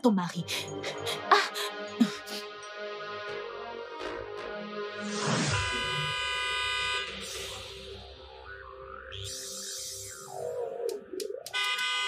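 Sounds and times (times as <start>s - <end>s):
soft background music: 0.0s - 8.3s
car horn honk: 5.5s - 7.2s, 11.6s - 12.0s.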